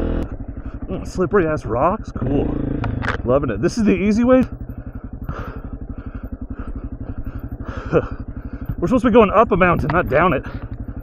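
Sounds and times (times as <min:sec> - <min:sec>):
dirt bike engine thumping: 0:00.0 - 0:11.0.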